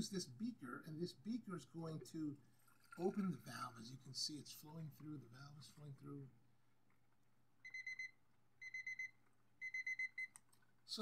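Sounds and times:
timer alarm beeping: 0:07.6 - 0:10.3.

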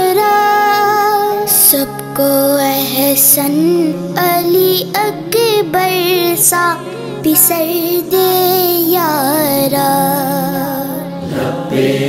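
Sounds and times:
boy singing: 0:00.0 - 0:11.3
choir chanting together: 0:11.1 - 0:12.0.

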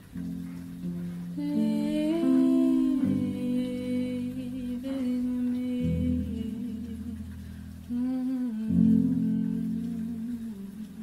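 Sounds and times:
guitar chords: 0:00.0 - 0:11.0
person humming: 0:01.4 - 0:11.0.

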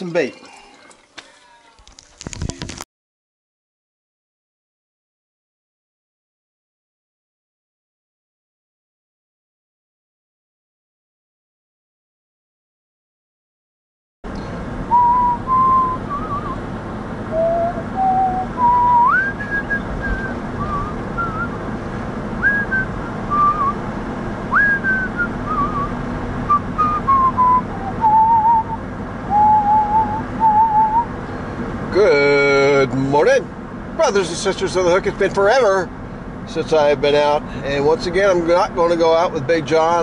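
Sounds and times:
road and engine noise in car: 0:14.3 - 0:40.0
person whistling a slow tune: 0:14.9 - 0:16.6, 0:17.3 - 0:21.6, 0:22.4 - 0:23.8, 0:24.5 - 0:25.9, 0:26.5 - 0:31.1.

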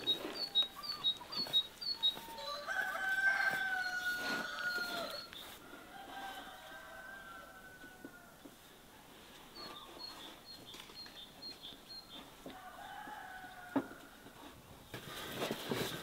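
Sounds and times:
small bird chirping: 0:00.0 - 0:02.5, 0:09.5 - 0:12.3
rooster crowing: 0:02.1 - 0:08.4, 0:12.5 - 0:14.3.

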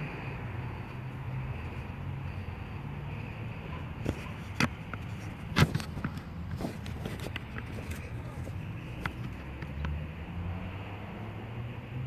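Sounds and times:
sharp clicks and knocks: 0:04.0 - 0:08.1.

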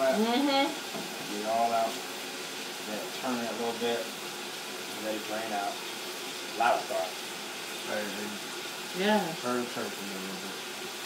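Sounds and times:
faucet water pouring into saucepan: 0:00.0 - 0:11.0.

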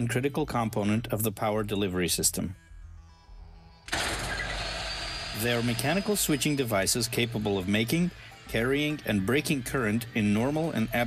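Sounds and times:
circuit breaker mechanical rushing: 0:03.9 - 0:08.0.

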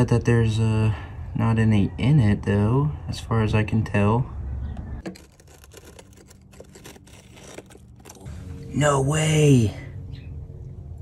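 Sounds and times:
knife scratching a wasp nest: 0:05.0 - 0:08.3.

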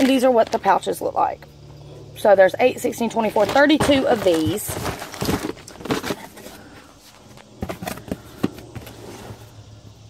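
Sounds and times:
cardboard boxes rustling and scraping: 0:03.0 - 0:09.7.

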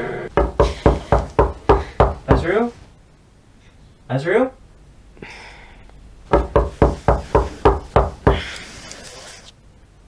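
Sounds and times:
rapid knocking on a door: 0:00.4 - 0:02.6, 0:06.3 - 0:08.4.

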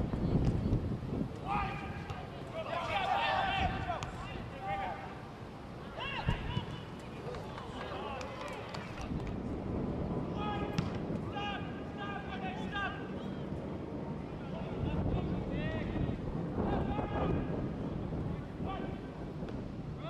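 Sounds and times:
wind rumble on microphone: 0:00.0 - 0:20.0
players shouting: 0:01.4 - 0:05.2.

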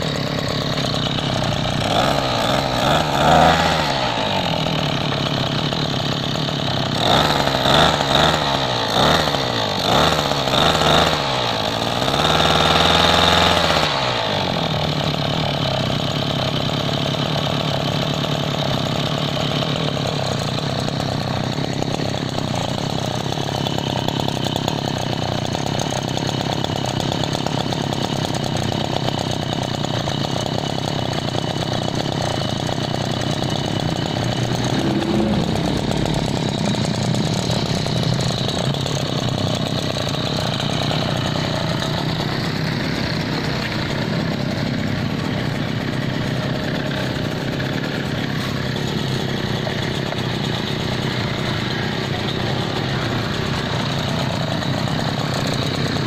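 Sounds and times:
brush cutter engine idling: 0:00.0 - 0:56.0.

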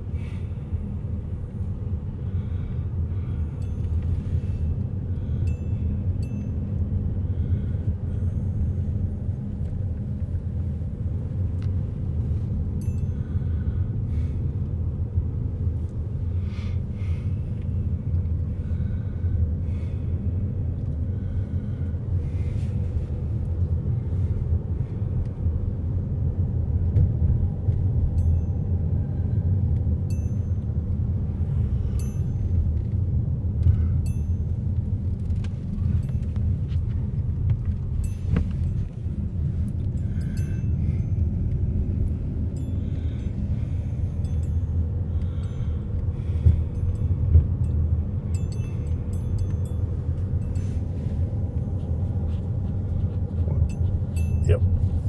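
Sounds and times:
car cabin road rumble: 0:00.0 - 0:55.0.

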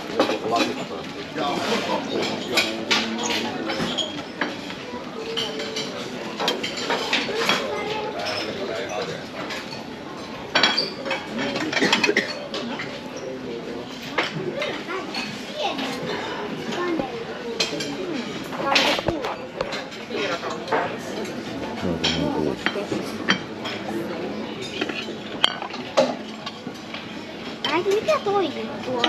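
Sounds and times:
clinks of plates and cutlery: 0:00.0 - 0:16.9, 0:17.5 - 0:28.2
background chatter: 0:00.0 - 0:29.0.

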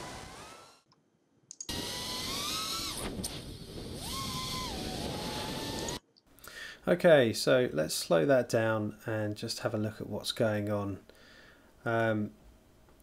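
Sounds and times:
drone motors and propellers whining: 0:00.0 - 0:00.9, 0:01.7 - 0:06.0.

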